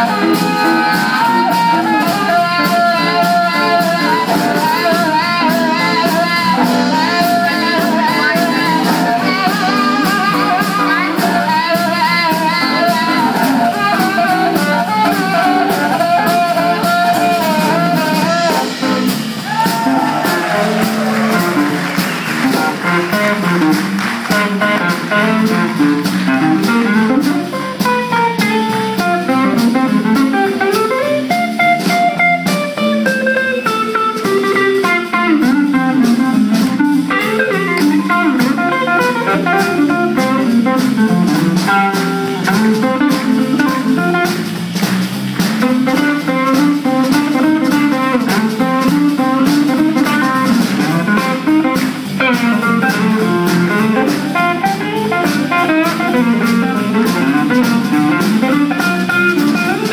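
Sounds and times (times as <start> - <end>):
drum kit steady beat: 0.0 - 59.9
guitars: 0.0 - 59.9.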